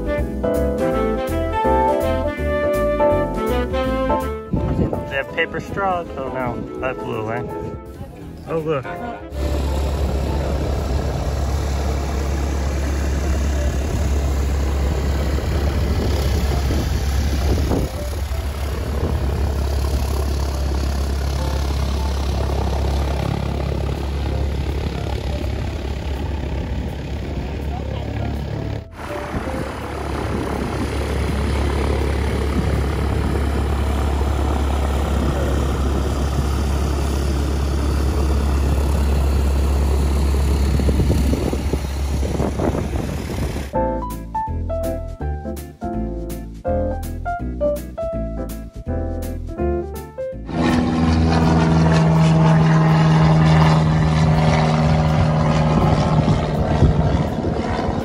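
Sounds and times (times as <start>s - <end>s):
propeller airplane taxiing: 0.0s - 44.2s, 50.4s - 58.0s.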